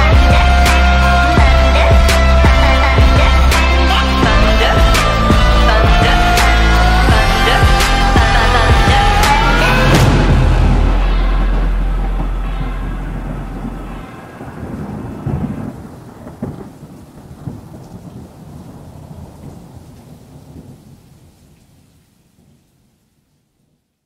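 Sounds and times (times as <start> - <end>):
thunder rumbling and cracking: 0.0 - 21.6
rain: 0.0 - 24.0.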